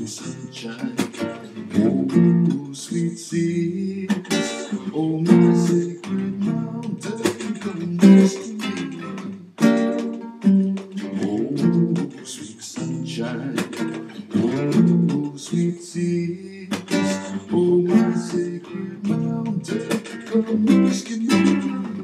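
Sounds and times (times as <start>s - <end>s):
classical guitar strumming: 0.0s - 22.0s.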